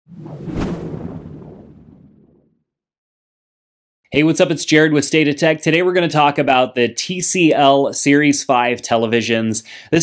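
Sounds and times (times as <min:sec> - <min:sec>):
whoosh building to sharp hit: 0:00.1 - 0:02.4.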